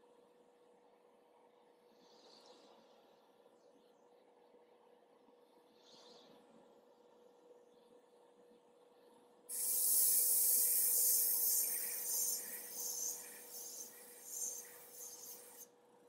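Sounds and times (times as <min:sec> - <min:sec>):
airbrush spraying hiss: 0:09.5 - 0:15.6.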